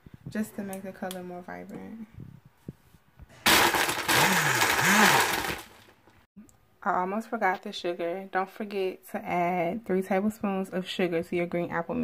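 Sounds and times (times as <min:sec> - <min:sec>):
blender crushing ice: 0:03.4 - 0:06.0.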